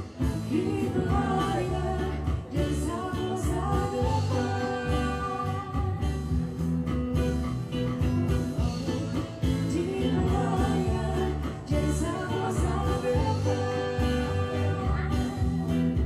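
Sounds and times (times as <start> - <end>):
woman singing into microphone: 0.0 - 6.7, 8.3 - 16.0
acoustic guitars: 0.0 - 16.0
electric bass: 0.0 - 16.0.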